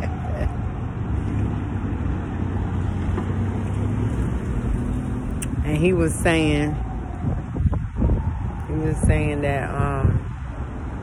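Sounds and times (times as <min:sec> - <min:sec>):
street traffic rumble: 0:00.0 - 0:11.0.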